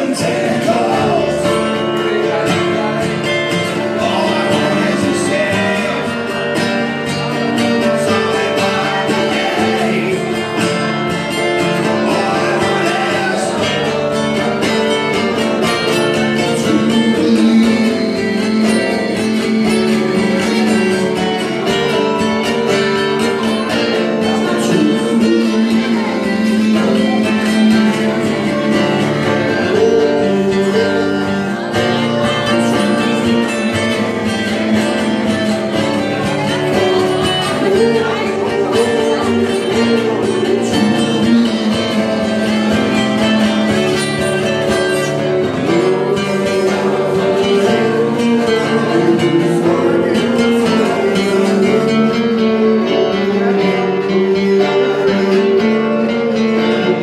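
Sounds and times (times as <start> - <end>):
acoustic guitars playing: 0.0 - 57.0.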